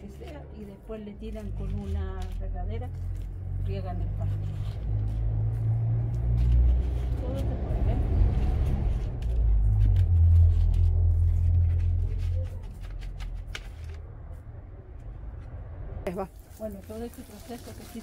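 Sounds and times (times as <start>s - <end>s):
vehicle engine rumble: 0.0s - 18.0s.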